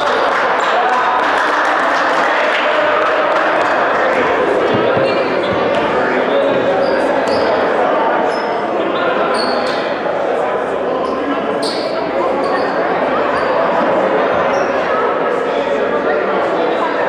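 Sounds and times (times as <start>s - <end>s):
murmur of voices: 0.0s - 17.0s
basketballs bouncing on wood floor: 4.7s - 5.9s.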